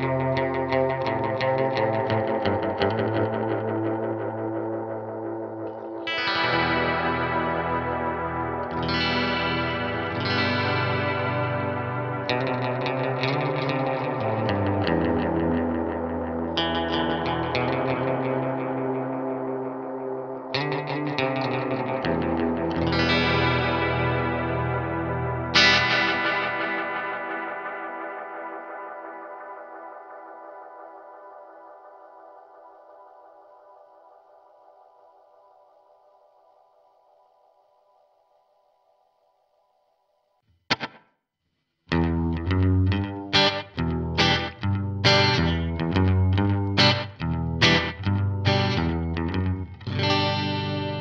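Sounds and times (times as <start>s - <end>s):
electric guitar chords with echo: 0.0s - 36.5s, 40.7s - 41.0s, 41.9s - 51.0s.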